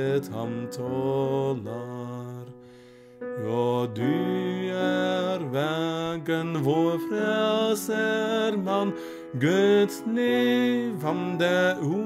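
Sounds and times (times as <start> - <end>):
person singing a hymn: 0.0 - 12.0.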